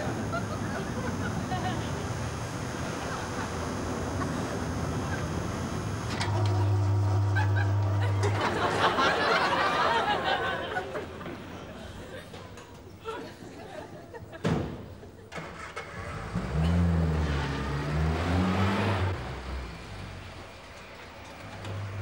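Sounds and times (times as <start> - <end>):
car engine starting and revving: 15.3 - 20.8.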